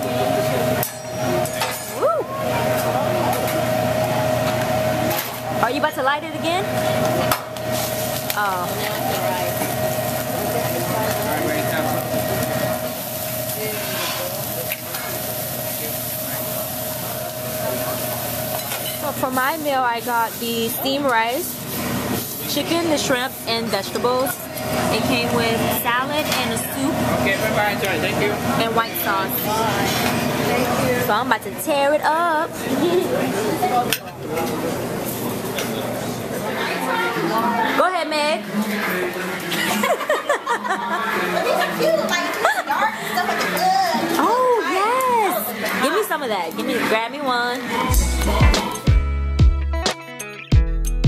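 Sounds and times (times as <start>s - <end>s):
restaurant chatter: 0.0s - 49.0s
eggs sizzling on griddle: 7.6s - 23.3s.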